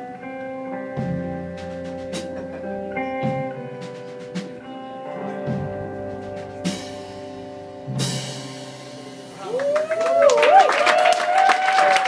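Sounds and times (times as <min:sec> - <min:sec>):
electric guitar chord ringing: 0:00.0 - 0:09.6
audience cheering: 0:09.4 - 0:12.0
person whooping: 0:09.4 - 0:12.0.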